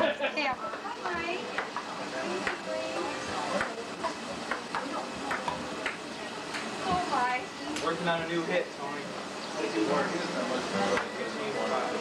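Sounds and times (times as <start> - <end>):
party chatter: 0.0 - 12.0
music: 9.6 - 12.0.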